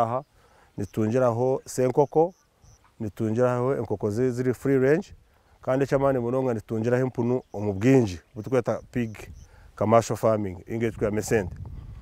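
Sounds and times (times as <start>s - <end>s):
man speaking: 0.0s - 2.4s, 3.0s - 11.5s.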